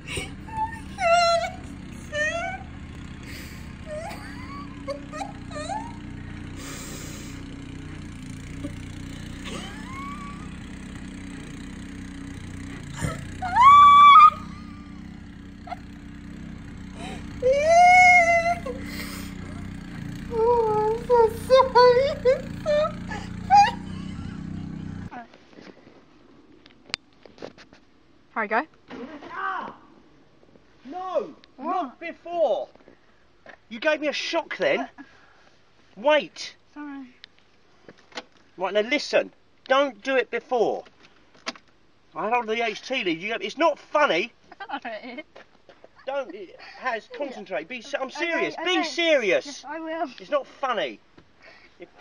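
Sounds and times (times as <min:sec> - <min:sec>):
high-pitched cry: 0:00.0 - 0:02.7, 0:03.3 - 0:07.4, 0:09.4 - 0:10.6, 0:12.9 - 0:15.8, 0:17.0 - 0:19.7, 0:20.3 - 0:24.4
small engine running: 0:00.0 - 0:25.1
man exclaiming: 0:09.3 - 0:10.6, 0:13.0 - 0:15.0, 0:17.0 - 0:24.0, 0:46.1 - 0:49.6
man calling out: 0:17.0 - 0:23.8, 0:47.0 - 0:49.6.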